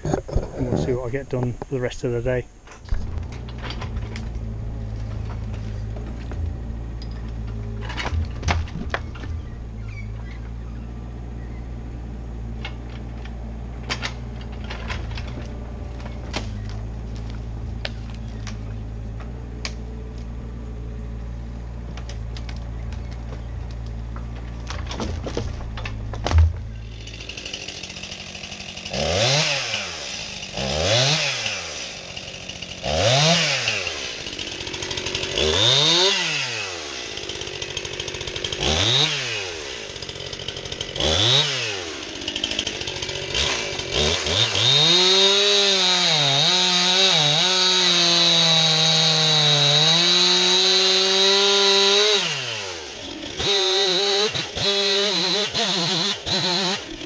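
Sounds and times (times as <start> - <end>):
chainsaw revving and cutting log: 3.0 - 57.0.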